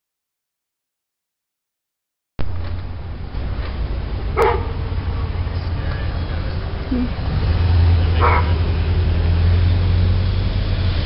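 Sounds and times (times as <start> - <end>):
steady low rumble: 2.4 - 11.0
puppy barking: 4.4 - 4.8, 8.2 - 8.6.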